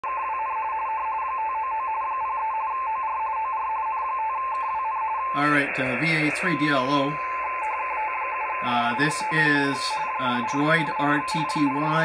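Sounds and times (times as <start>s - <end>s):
radio teletype tone: 0.0s - 12.0s
steady radio band hiss: 4.6s - 12.0s.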